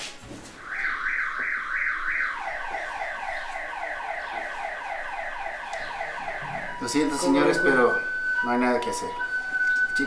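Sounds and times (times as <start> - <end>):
electronic alarm sweeps: 0.6 - 10.0.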